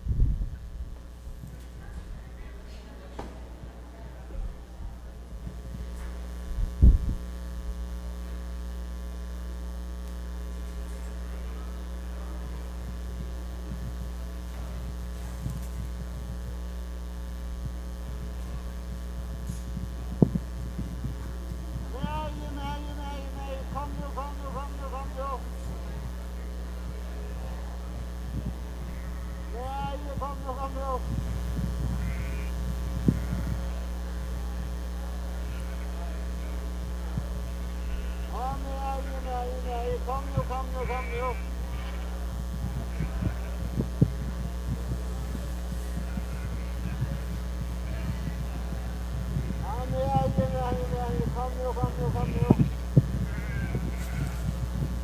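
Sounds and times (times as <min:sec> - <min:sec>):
low electrical hum: 0:00.0 - 0:55.0.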